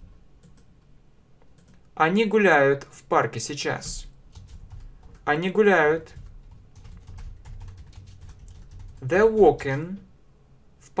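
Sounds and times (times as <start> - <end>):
low steady hum: 0.0 - 11.0
typing on a computer keyboard: 0.4 - 0.7, 1.6 - 1.9, 4.3 - 5.3, 6.0 - 9.6.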